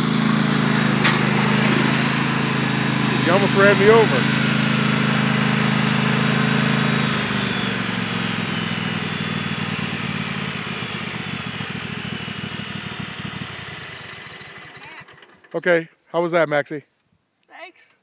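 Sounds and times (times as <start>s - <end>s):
lawn tractor engine running: 0.0s - 15.8s.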